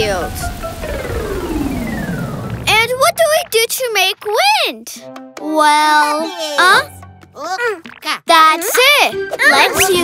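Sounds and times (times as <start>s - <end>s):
synthesized tone gliding downward: 0.0s - 3.8s
low rumble: 0.0s - 4.4s
child's voice: 2.7s - 10.0s.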